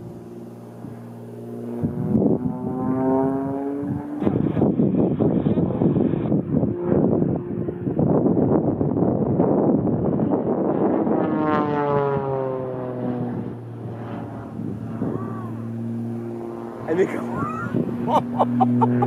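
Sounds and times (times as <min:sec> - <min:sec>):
plane engine and propeller: 0:00.0 - 0:19.0.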